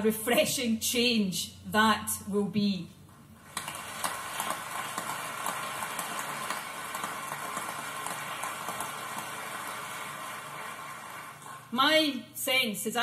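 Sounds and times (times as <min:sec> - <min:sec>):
audience applauding: 0:03.5 - 0:11.7.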